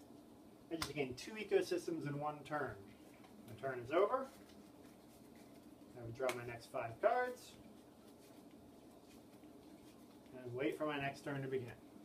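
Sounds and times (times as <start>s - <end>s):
paper cards rustling: 2.9s - 12.0s.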